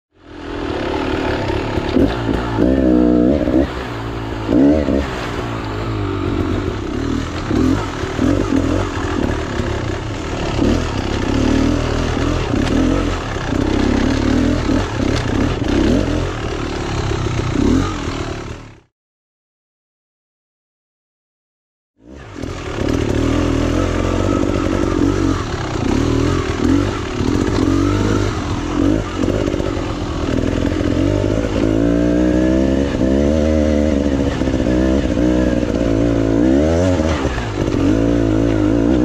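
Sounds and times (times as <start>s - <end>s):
dirt bike engine revving: 0.2s - 18.9s, 22.0s - 39.0s.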